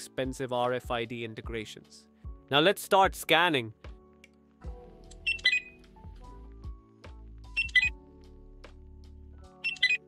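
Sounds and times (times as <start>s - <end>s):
barcode scanner beeping: 5.3s - 5.8s, 7.6s - 8.0s, 9.6s - 10.0s.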